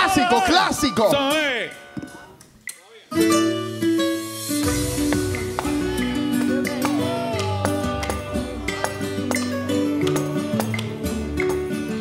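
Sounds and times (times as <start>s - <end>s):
drum and hand percussion: 4.3s - 12.0s.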